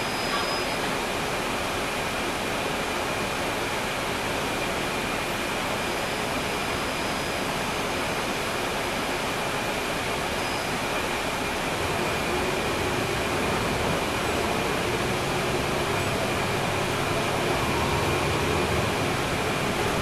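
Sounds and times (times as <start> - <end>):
diesel bus engine rumble and hiss: 0.0 - 20.0
faint high whine: 10.2 - 11.1.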